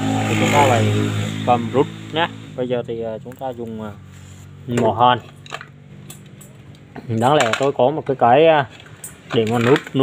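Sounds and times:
metallic clinks and taps of tools: 5.3 - 6.8.

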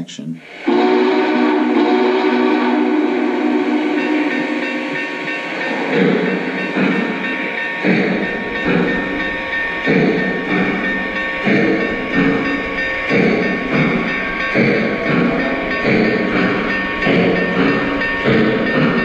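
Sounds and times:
model steam locomotive chuffing: 0.4 - 19.0
steady high tone: 3.0 - 19.0.

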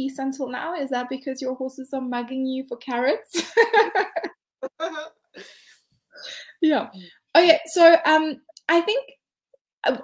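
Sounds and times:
woman laughing: 3.3 - 5.7
breathy exhale: 5.4 - 7.2.

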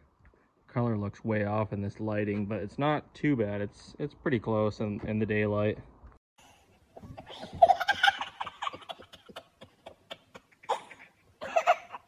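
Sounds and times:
man and children laughing: 7.0 - 12.0.

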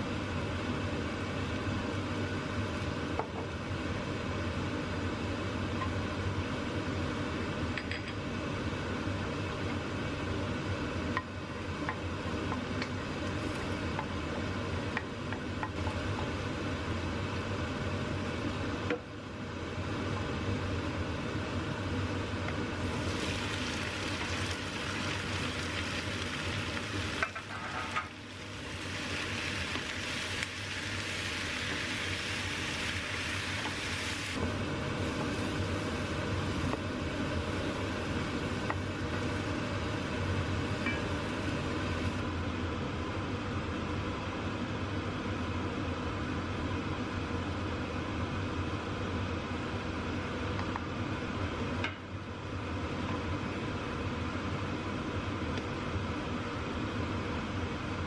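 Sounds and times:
vegetables sizzling in oil: 11.3 - 20.5, 22.7 - 42.2
wooden spoon stirring in wok: 22.8 - 42.1.

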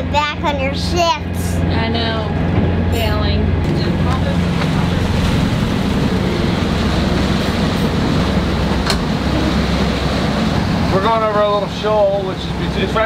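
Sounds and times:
sailboat rumble in rough seas: 0.0 - 13.0.

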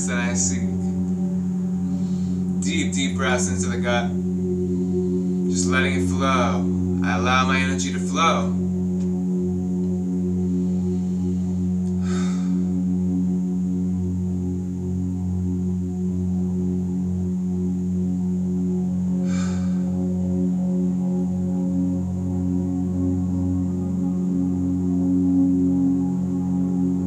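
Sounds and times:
low droning tone: 0.0 - 27.0
breath hisses: 1.8 - 2.6, 10.6 - 12.7, 19.2 - 20.0.

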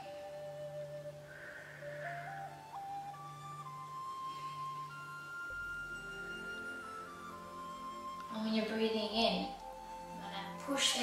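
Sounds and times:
low steady drone: 0.0 - 11.0
slow melody of held notes: 0.0 - 11.0.

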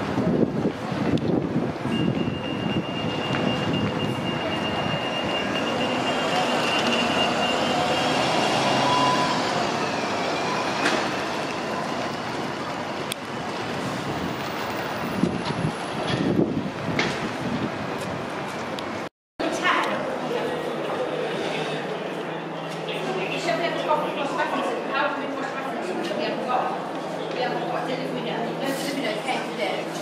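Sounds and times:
wind gusts on microphone: 0.0 - 5.8, 11.1 - 19.1
bus passing close by: 0.0 - 19.1
city background noise: 0.0 - 30.0
street noise: 0.0 - 30.0.

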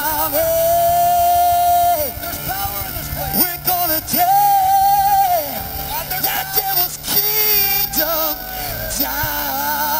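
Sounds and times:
gospel choir singing with music: 0.0 - 9.9
lead voice holding long note: 0.0 - 9.9.

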